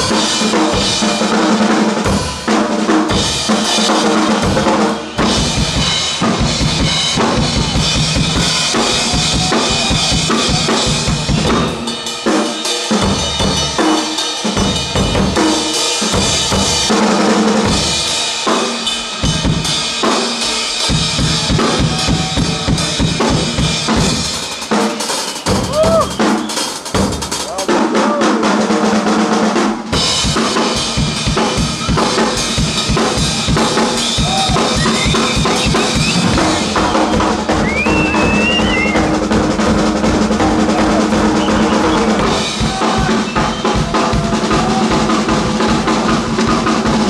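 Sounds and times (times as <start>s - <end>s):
drum kits playing: 0.0s - 47.0s.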